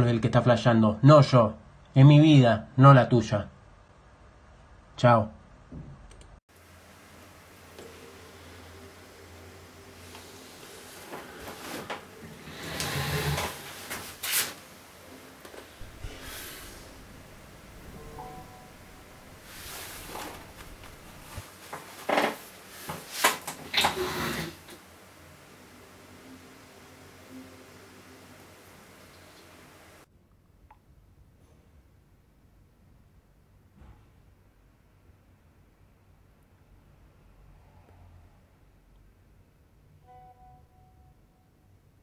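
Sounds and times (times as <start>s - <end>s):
faint soft chime: 17.9s - 19.3s, 40.0s - 41.8s.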